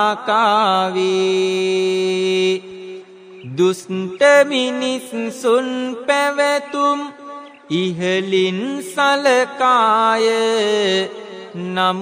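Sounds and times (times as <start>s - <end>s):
monk chanting verse: 0.0s - 12.0s.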